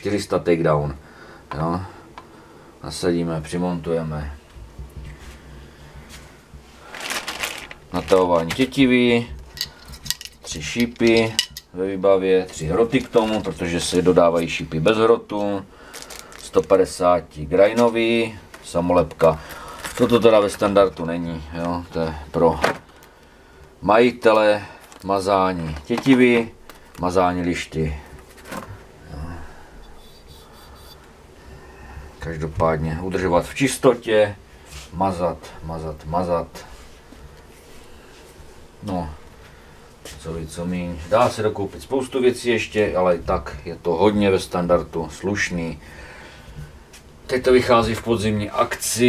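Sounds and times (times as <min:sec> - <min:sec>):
plastic bags rustling: 0:05.1 - 0:11.5, 0:12.4 - 0:28.9
handling parts on carpet: 0:06.9 - 0:08.7.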